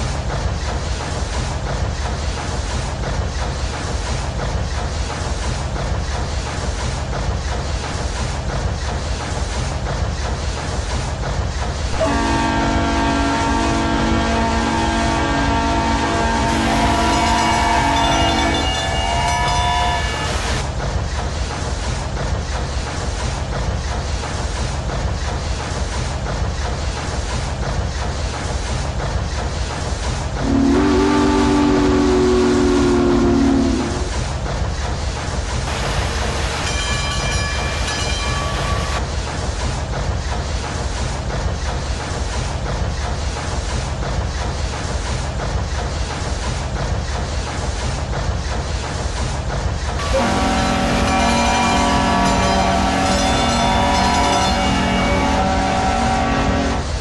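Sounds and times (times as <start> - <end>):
steam train chugging: 0.0 - 57.0
train chime whistle blasts: 14.8 - 20.4, 50.0 - 56.7.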